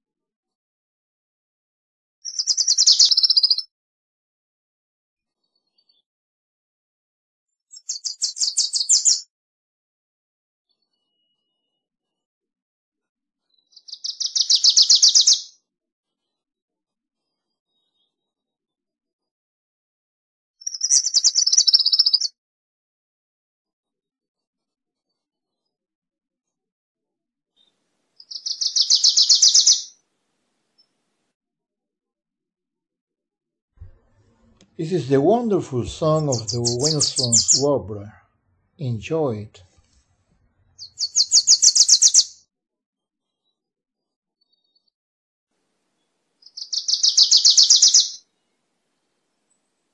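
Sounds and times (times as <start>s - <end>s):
warbler song chatter: 2.3s - 3.6s, 7.8s - 9.2s, 13.8s - 15.5s, 20.6s - 22.3s, 28.2s - 30.0s, 34.8s - 38.2s, 40.8s - 42.4s, 46.4s - 48.2s.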